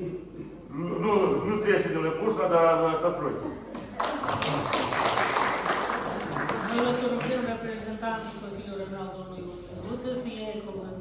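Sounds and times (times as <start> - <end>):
audience applauding: 3.8 - 7.4.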